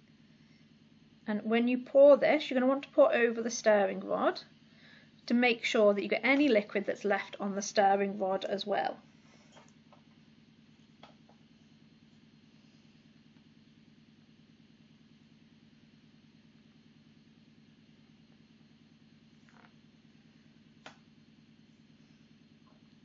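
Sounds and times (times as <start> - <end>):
faint low hum: 0.0 - 23.0.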